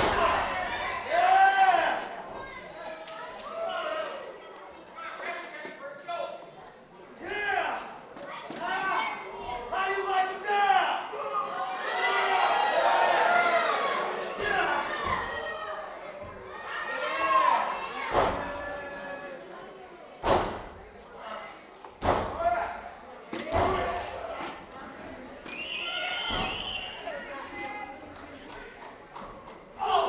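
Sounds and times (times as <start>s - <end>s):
people shouting: 0.0s - 2.1s, 10.5s - 15.9s, 29.8s - 30.0s
children shouting: 10.5s - 19.4s, 25.5s - 27.9s.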